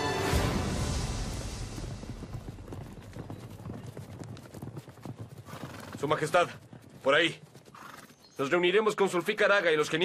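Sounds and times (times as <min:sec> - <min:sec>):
low music: 0:00.0 - 0:02.7
horse hooves clopping on dirt: 0:01.1 - 0:10.0.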